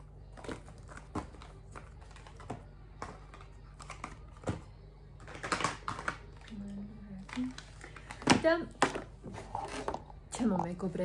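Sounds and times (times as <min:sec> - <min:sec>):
boxes and packets clicking: 0:00.2 - 0:10.1.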